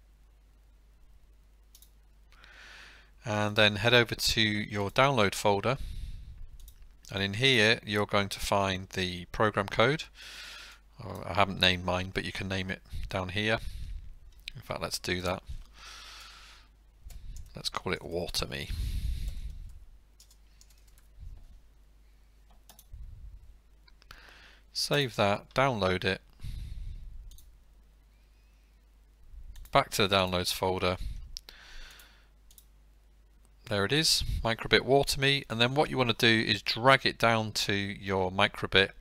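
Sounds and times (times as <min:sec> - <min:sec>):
faint room hum: 0:00.0 - 0:39.0
computer mouse click: 0:01.7 - 0:02.0, 0:06.6 - 0:06.9, 0:19.3 - 0:21.1, 0:22.5 - 0:22.9, 0:27.3 - 0:27.5, 0:31.9 - 0:32.7
soft in-breath: 0:02.4 - 0:03.2, 0:10.2 - 0:10.9, 0:15.5 - 0:17.4, 0:24.1 - 0:24.7, 0:26.4 - 0:27.2, 0:31.0 - 0:32.4
keyboard typing: 0:19.2 - 0:21.5, 0:22.5 - 0:22.9, 0:27.3 - 0:27.5.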